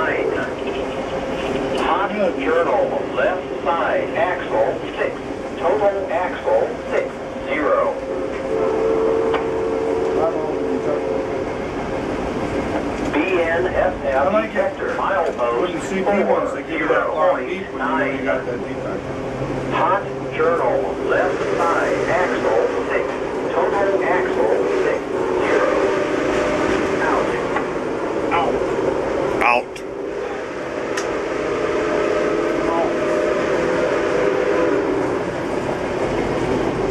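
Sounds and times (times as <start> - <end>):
people talking indistinctly: 0.0 - 8.2, 13.0 - 26.0, 26.8 - 30.5
train rumble inside railroad car: 0.0 - 36.9
locomotive whistle blast: 8.5 - 10.4.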